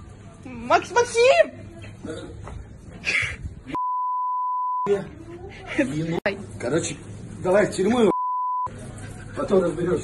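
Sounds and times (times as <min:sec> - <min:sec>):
censor bleep: 0:03.8 - 0:04.9, 0:08.1 - 0:08.7.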